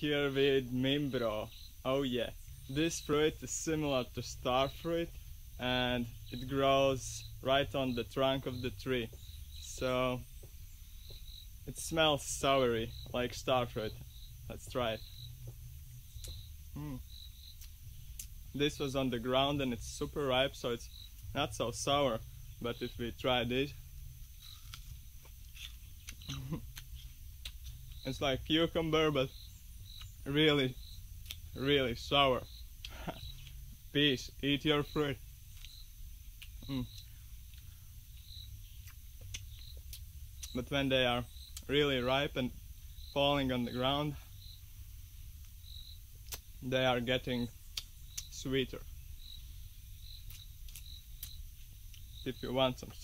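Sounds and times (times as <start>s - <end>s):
insect chirping: 0.0s - 53.0s
person chewing fruit: 14.0s - 18.5s, 23.8s - 28.2s, 30.8s - 31.6s, 32.5s - 33.8s, 35.5s - 40.6s, 46.2s - 46.6s, 47.6s - 48.3s, 50.0s - 52.2s
faint crunching clicks: 50.2s - 52.1s.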